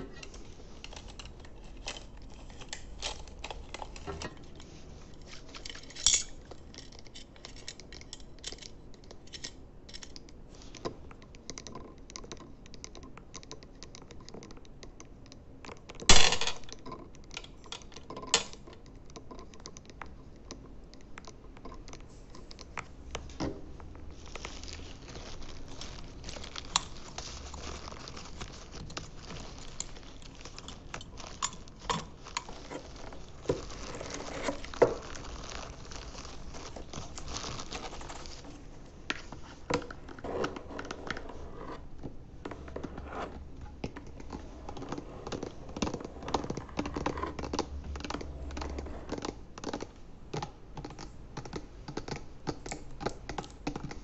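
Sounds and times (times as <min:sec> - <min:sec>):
plastic blister pack crinkling: 0:00.0 - 0:10.9, 0:22.3 - 0:42.8.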